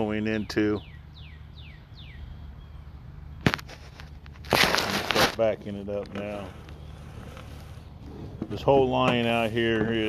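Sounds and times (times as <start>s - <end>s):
bird chirping: 0.0s - 3.5s, 6.4s - 10.0s.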